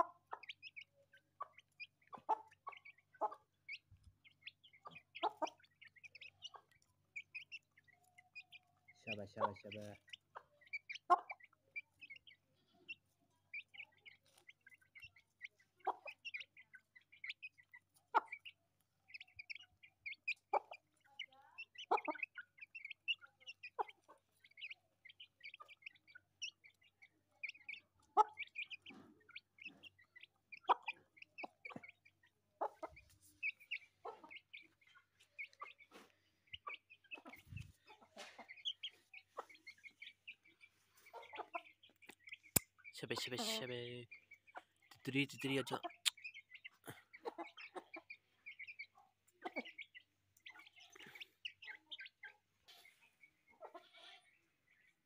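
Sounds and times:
chicks peeping: 0:00.0 - 0:55.0
hen clucking: 0:00.0 - 0:55.0.

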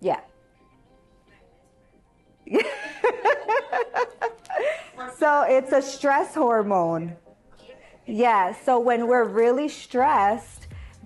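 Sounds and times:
woman laughing: 0:02.5 - 0:05.0
breathy outbreath: 0:10.6 - 0:11.0.

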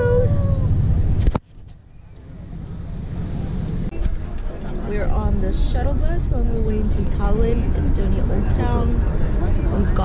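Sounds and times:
bus running from inside: 0:00.0 - 0:10.0
wind rumbling on microphone: 0:00.0 - 0:10.0.

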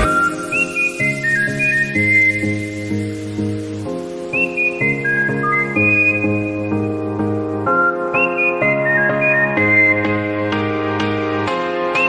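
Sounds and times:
whistled melody: 0:00.0 - 0:12.0.

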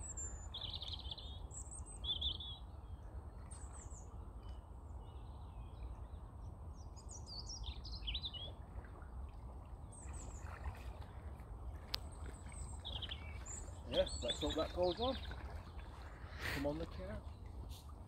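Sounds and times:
small birds chirping: 0:00.0 - 0:09.0, 0:09.7 - 0:18.0.

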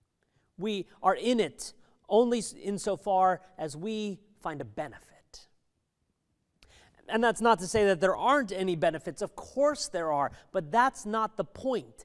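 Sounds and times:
faint breath: 0:06.6 - 0:07.0.

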